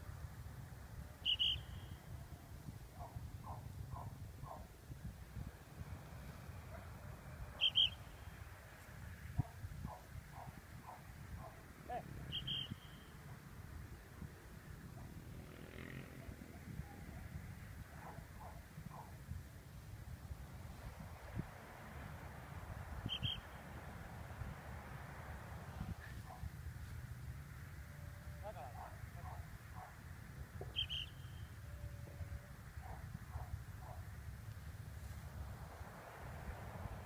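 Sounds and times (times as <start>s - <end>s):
bird chirping: 1.2s - 2.0s, 7.6s - 8.3s, 12.3s - 13.3s, 23.0s - 23.6s, 30.6s - 31.5s
short high-pitched chirps: 1.2s - 2.0s, 12.3s - 13.1s
wind rumble on microphone: 2.0s - 7.6s, 8.2s - 30.8s, 31.6s - 37.0s
wind buffeting microphone: 9.2s - 12.3s.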